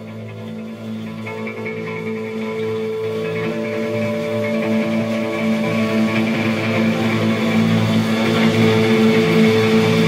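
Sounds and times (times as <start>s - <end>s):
bass guitar droning notes: 0.0s - 10.0s
electric guitar droning notes: 0.0s - 10.0s.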